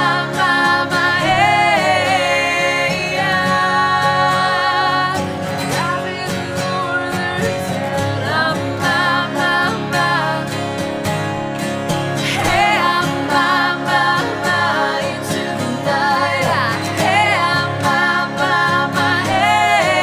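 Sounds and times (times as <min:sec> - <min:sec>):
men singing harmony: 0:00.0 - 0:10.8, 0:12.2 - 0:20.0
woman singing: 0:00.0 - 0:11.0, 0:12.2 - 0:20.0
acoustic guitars strumming: 0:00.0 - 0:20.0.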